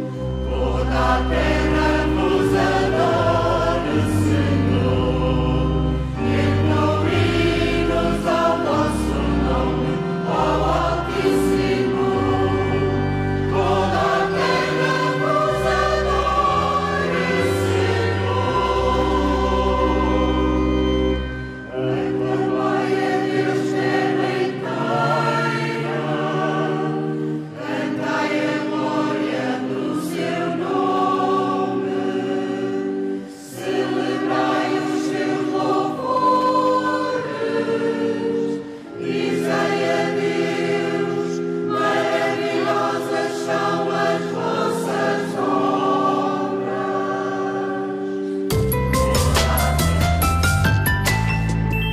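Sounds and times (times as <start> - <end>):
mixed choir singing a hymn: 0.0 - 48.5, 49.2 - 50.2.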